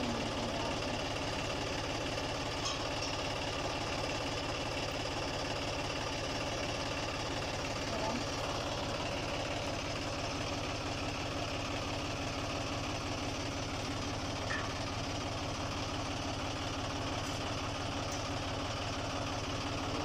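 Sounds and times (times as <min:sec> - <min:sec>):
tractor diesel engine idling: 0:00.0 - 0:20.0.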